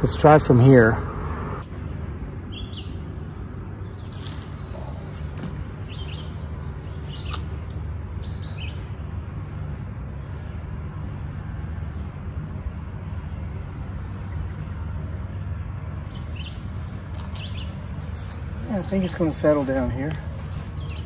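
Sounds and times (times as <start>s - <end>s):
birds chirping: 0.0s - 21.0s
low outdoor rumble: 0.0s - 21.0s.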